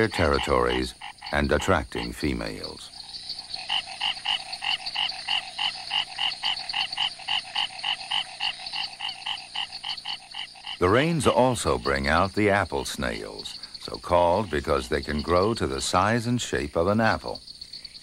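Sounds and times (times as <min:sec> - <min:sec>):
frogs croaking: 0:00.0 - 0:18.0.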